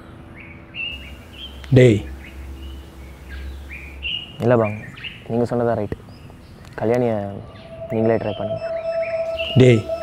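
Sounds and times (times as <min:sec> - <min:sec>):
birds chirping: 0:00.0 - 0:10.0
low outdoor rumble: 0:00.7 - 0:10.0.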